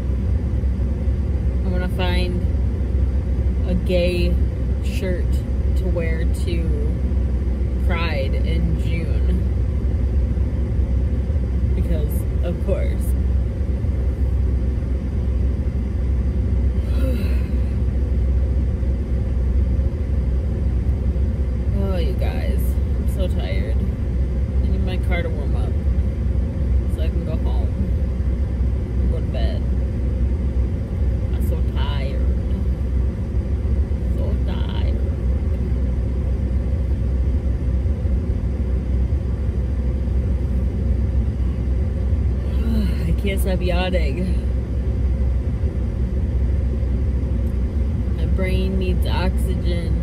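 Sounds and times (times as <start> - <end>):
low rumble inside car: 0.0 - 50.0.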